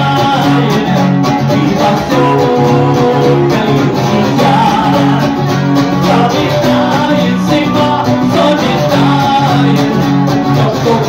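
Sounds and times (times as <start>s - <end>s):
electric guitar: 0.0s - 11.0s
live rock song: 0.0s - 11.0s
male voice singing: 0.0s - 11.0s.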